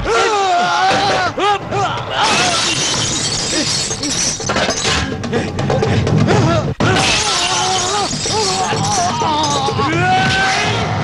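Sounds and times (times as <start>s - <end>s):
loud background music: 1.0s - 11.0s
glass pane shattering: 2.2s - 5.1s, 6.9s - 9.9s
man shouting: 6.3s - 10.6s.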